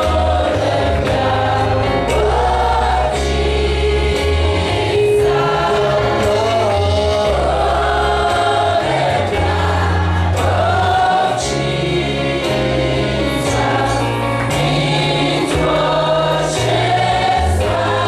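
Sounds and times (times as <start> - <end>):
deep bass line: 0.0 - 18.0
group singing gospel music: 0.0 - 18.0.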